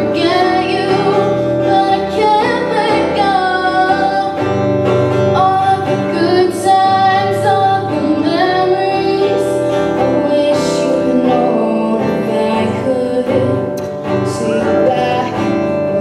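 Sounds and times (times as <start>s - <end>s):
acoustic guitar: 0.0s - 16.0s
woman singing into microphone: 0.0s - 16.0s.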